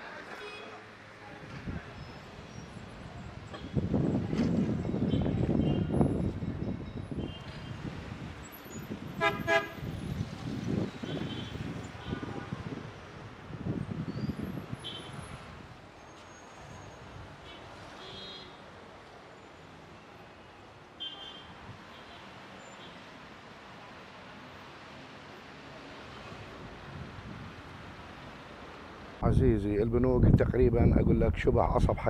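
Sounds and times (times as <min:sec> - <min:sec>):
street traffic: 0:00.0 - 0:32.0
car horn toots: 0:09.2 - 0:09.8.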